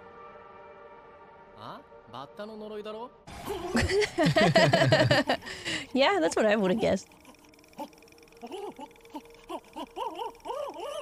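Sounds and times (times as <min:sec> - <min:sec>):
faint steady hum: 0:03.8 - 0:11.0
short pitched cries: 0:07.1 - 0:11.0.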